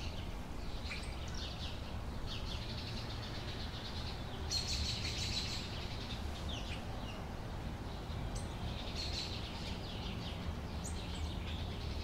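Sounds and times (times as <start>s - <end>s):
sparrows chirping: 0.0s - 12.0s.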